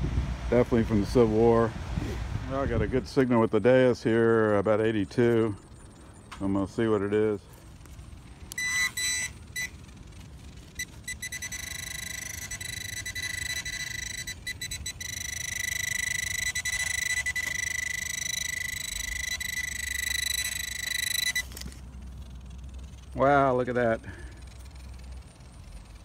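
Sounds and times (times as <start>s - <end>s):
metal detector pulsing tone: 7.8s - 26.0s.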